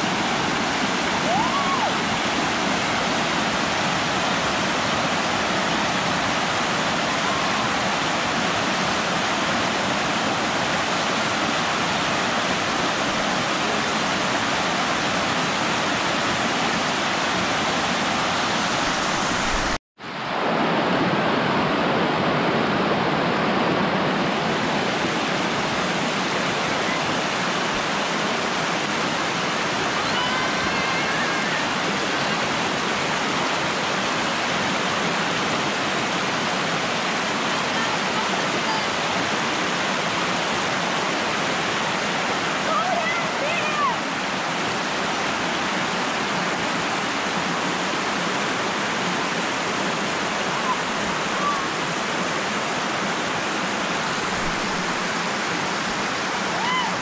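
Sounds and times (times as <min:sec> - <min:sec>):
water rushing over rock ledges: 0:00.0 - 0:57.0.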